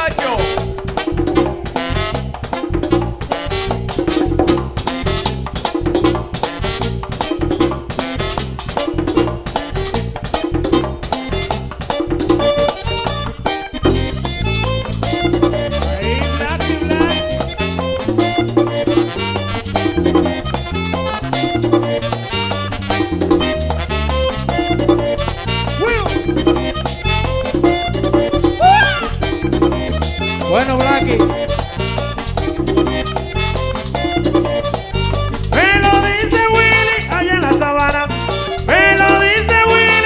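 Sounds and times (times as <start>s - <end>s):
saxophone: 0.0s - 8.9s, 9.5s - 40.0s
accordion: 0.0s - 40.0s
electric bass: 0.0s - 40.0s
guira scraping: 9.5s - 40.0s.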